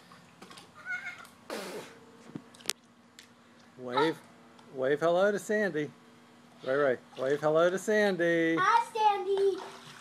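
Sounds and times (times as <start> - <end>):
pool water splash: 9.3 - 10.0.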